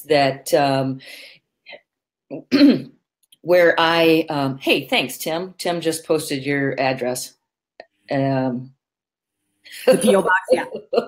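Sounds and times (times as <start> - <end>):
person clearing throat: 2.4 - 3.0.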